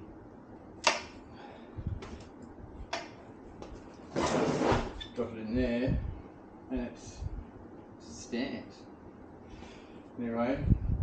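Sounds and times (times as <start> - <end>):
rough scraping rub: 4.1 - 5.0.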